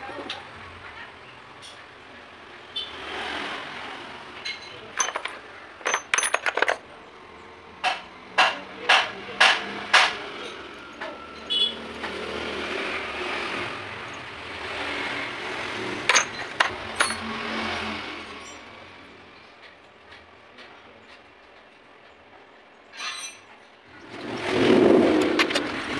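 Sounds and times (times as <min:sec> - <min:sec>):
drill bits clinking together: 0:04.5 - 0:06.9, 0:16.1 - 0:17.5.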